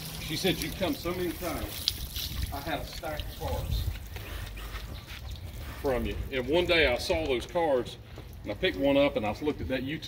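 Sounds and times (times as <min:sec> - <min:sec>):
hose spraying water on metal: 0:00.0 - 0:03.9
wind rumble on microphone: 0:01.9 - 0:04.2.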